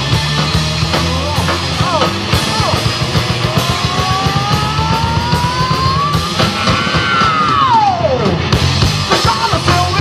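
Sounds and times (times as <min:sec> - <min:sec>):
heavy rock band playing: 0:00.0 - 0:10.0.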